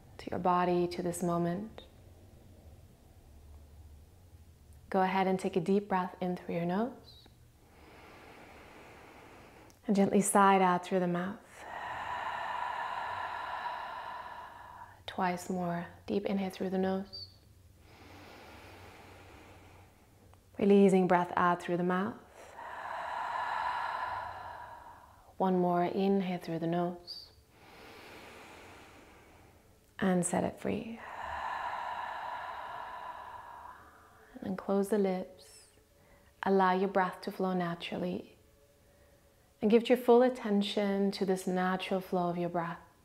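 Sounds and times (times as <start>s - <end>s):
deep inhale through nose: 7.6s - 9.8s, 11.4s - 15.0s, 17.8s - 20.3s, 22.2s - 25.4s, 27.5s - 29.7s, 30.9s - 34.4s
woman exhaling through mouth: 11.4s - 15.0s, 22.4s - 25.3s, 31.0s - 34.4s.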